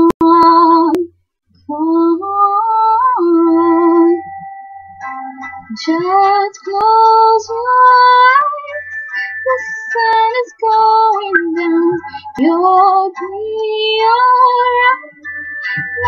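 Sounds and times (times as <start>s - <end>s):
woman singing wordless held notes: 1.7s - 4.2s, 9.5s - 15.1s
backing track with soft low beat: 3.2s - 16.0s.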